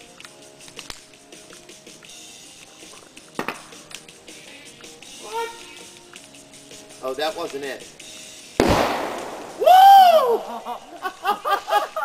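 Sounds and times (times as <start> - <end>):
person yelling: 5.2 - 5.8, 9.6 - 10.6.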